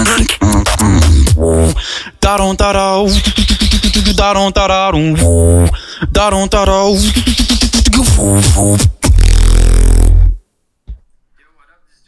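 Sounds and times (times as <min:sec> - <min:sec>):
beatboxer buzzing bass note: 0:00.0 - 0:02.4, 0:05.1 - 0:10.4.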